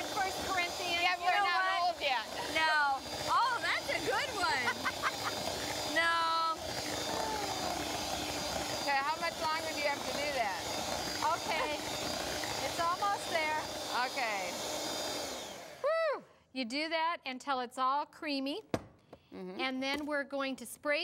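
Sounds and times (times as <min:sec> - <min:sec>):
women's voices: 0:00.0 - 0:04.9, 0:11.2 - 0:11.8
electric hand mixer running: 0:00.0 - 0:15.9
women laughing: 0:02.3 - 0:05.7.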